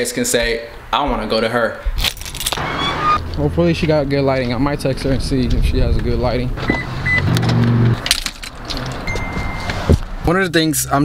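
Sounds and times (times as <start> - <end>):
steady high beep: 9.1 - 9.8.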